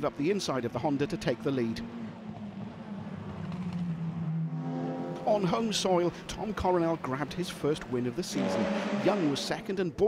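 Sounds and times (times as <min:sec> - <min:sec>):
race car engine running: 0:00.2 - 0:05.0.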